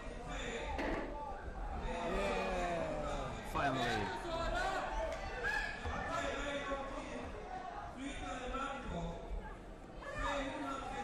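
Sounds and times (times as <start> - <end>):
voices talking in a hall: 0.0 - 11.0.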